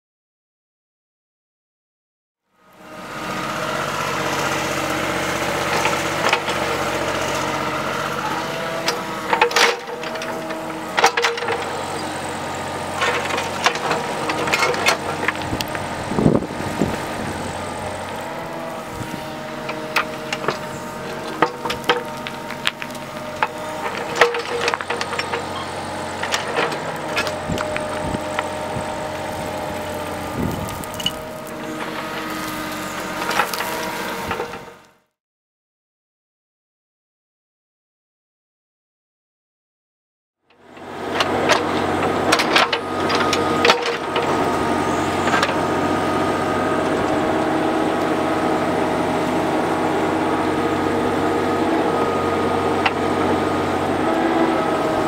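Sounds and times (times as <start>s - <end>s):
excavator diesel engine running: 2.6s - 35.1s, 40.5s - 55.0s
bucket clanking and scraping: 8.2s - 12.1s, 12.7s - 17.6s, 18.8s - 32.6s.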